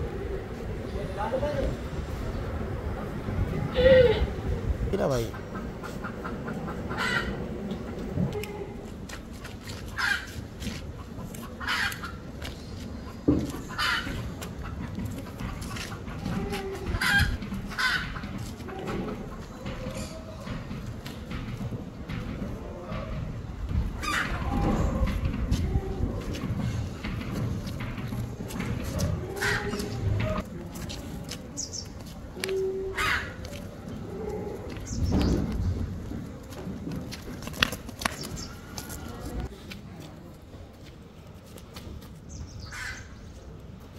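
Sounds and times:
chicken clucking: 5.3s - 8.5s.

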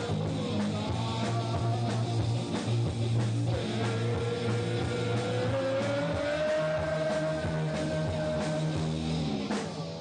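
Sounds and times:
bass line: 0.0s - 10.0s
drums: 0.0s - 10.0s.

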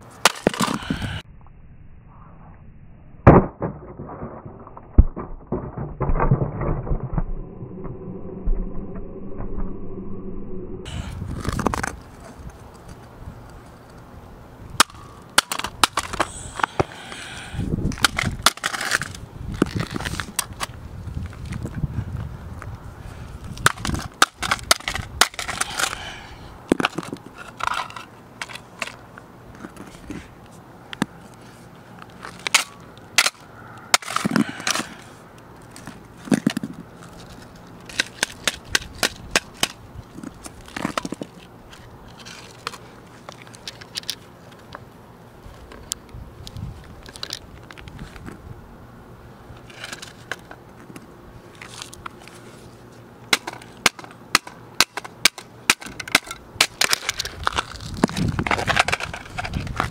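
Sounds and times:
plastic cracking and crunching: 3.3s - 7.2s, 53.3s - 59.9s.

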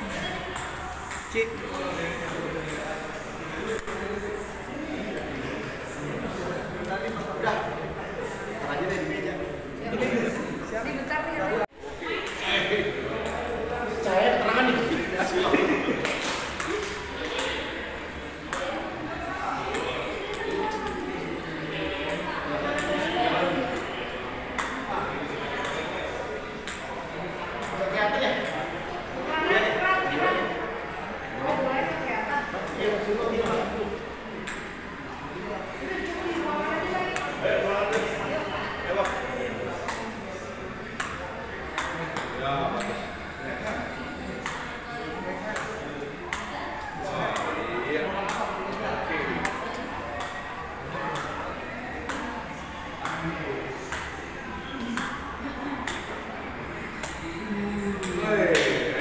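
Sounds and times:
table tennis ball pings: 0.3s - 1.4s
table tennis ball pinging on paddle: 0.4s - 2.9s, 24.5s - 24.8s, 26.6s - 27.0s, 34.4s - 34.8s, 39.0s - 40.1s, 41.0s - 43.1s, 51.1s - 51.4s, 55.8s - 56.2s, 58.0s - 58.7s.

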